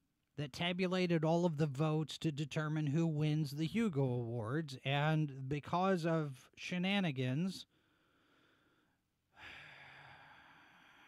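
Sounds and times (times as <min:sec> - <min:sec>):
man breathing into microphone: 0:07.7 - 0:11.0.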